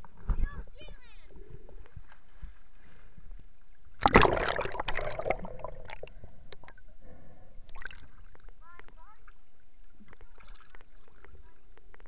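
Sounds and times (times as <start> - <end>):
loud water splash: 4.0 - 6.0
water lapping and sloshing: 7.6 - 12.0.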